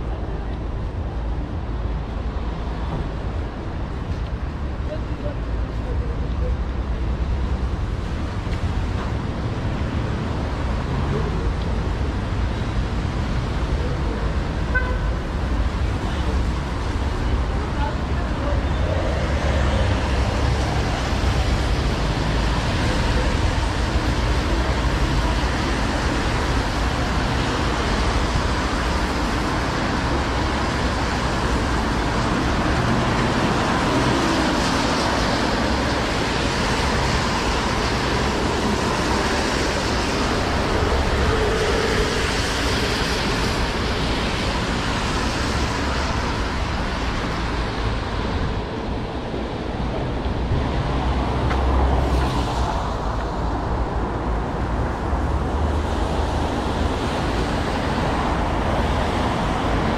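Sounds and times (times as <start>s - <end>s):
passing vehicle rumble: 0.0s - 59.9s
tyres hissing on wet road: 7.4s - 59.9s.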